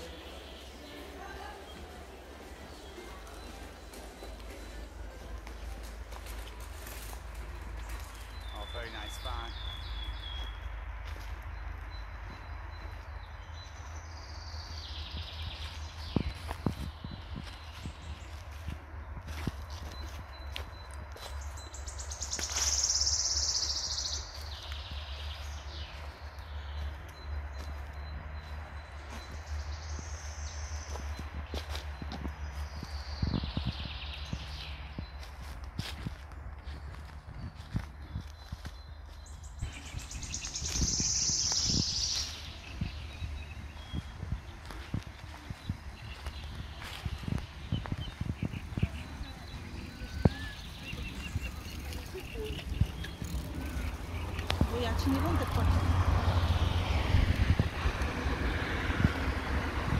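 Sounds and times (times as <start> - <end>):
footsteps: 0.0 - 9.4, 30.8 - 56.2.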